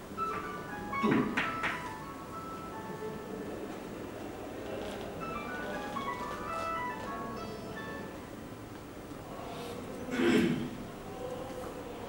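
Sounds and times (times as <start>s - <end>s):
room noise: 0.0s - 12.0s
electronic beeping melody: 5.2s - 8.2s.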